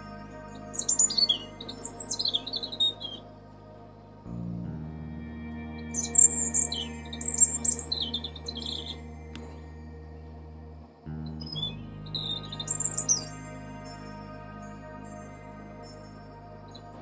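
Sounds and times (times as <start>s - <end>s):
robin singing: 0.0s - 3.7s, 4.3s - 10.4s, 11.2s - 17.0s
soft background music: 0.0s - 17.0s.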